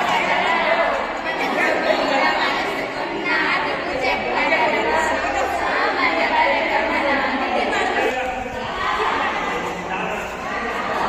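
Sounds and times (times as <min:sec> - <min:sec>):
students chattering: 0:00.0 - 0:11.0.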